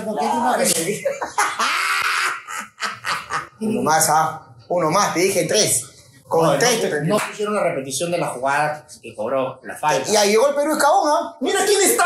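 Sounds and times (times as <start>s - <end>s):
men laughing: 0.9s - 3.8s.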